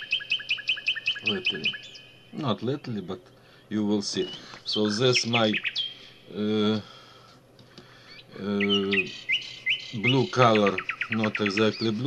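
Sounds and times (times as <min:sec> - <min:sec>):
small bird chirping: 0:00.0 - 0:06.8, 0:07.9 - 0:12.0
person's drawn-out hesitation sound: 0:02.4 - 0:03.1, 0:06.3 - 0:06.9.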